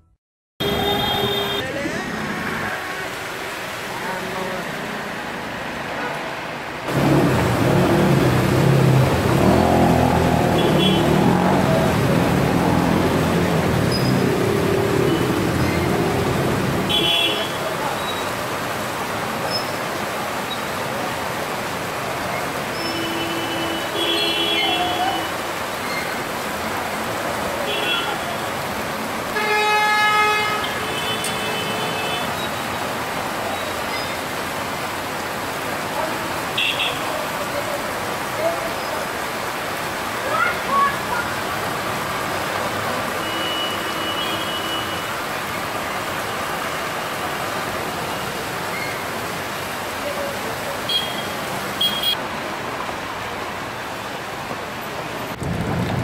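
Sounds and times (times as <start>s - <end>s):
car horn honks: 0.6s - 1.7s, 16.9s - 17.6s, 50.9s - 52.2s
rain and tyres hissing in water: 0.6s - 56.0s.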